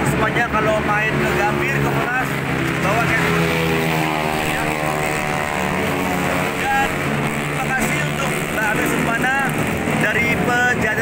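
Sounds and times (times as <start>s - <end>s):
general traffic noise: 0.0s - 11.0s
passing vehicle engine hum: 0.0s - 11.0s.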